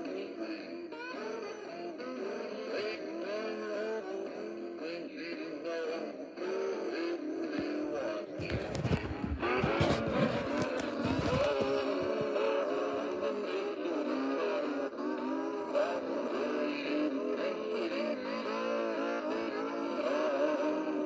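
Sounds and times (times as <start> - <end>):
song from small toy speaker: 0.0 - 21.0
rustling and knocking handling noise: 8.4 - 12.3.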